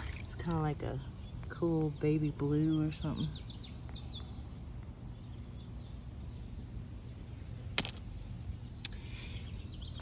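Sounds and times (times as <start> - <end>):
outdoor background noise: 0.0 - 10.0
stones knocking together: 7.8 - 8.1.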